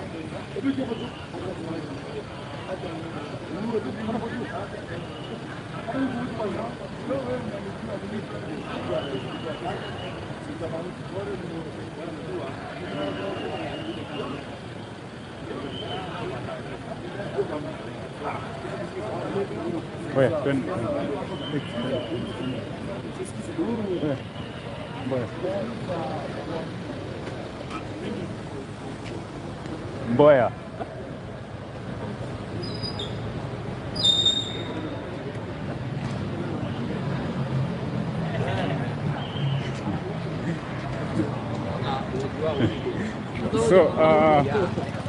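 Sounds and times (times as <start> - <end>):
idling vehicles rumbling: 0.0 - 45.0
street traffic: 0.0 - 45.0
shrill squeal: 34.0 - 34.8.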